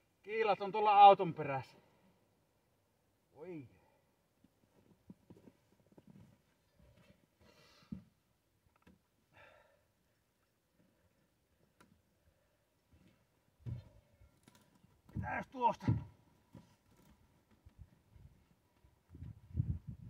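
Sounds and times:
faint rustles: 4.4s - 8.1s
soft thuds: 13.6s - 14.0s.

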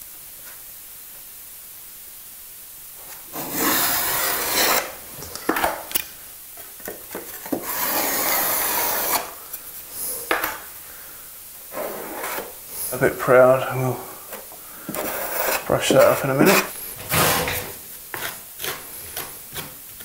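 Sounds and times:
metal knife scraping: 3.3s - 5.0s, 7.6s - 9.4s, 14.9s - 17.6s.

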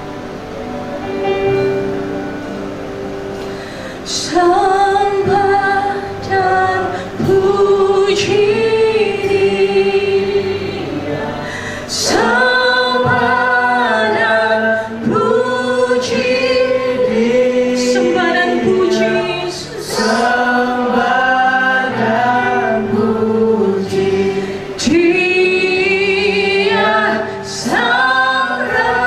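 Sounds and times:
choir singing worship song: 0.0s - 29.0s.

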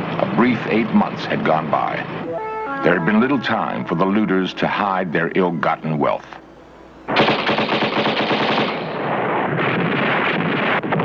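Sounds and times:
automatic machine-gun fire: 7.1s - 11.0s.

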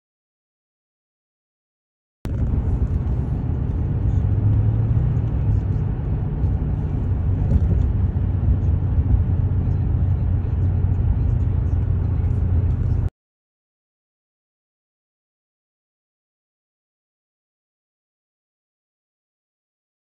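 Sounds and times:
car engine rumbling: 2.3s - 13.1s.

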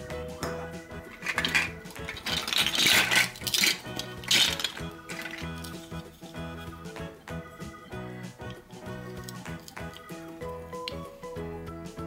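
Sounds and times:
cheerful background music: 0.0s - 12.0s
plastic toys clattering: 1.1s - 6.2s.

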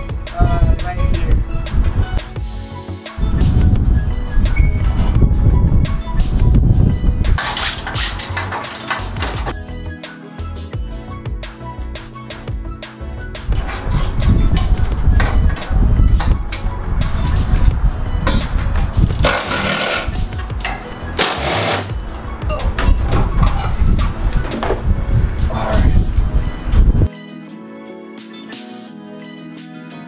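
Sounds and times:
background music: 0.0s - 30.0s
metal knocks and clanks: 7.4s - 9.5s, 18.2s - 21.4s, 22.4s - 23.8s
low rumble: 13.5s - 19.5s
harsh bursts of noise: 19.1s - 20.2s, 21.2s - 21.9s.

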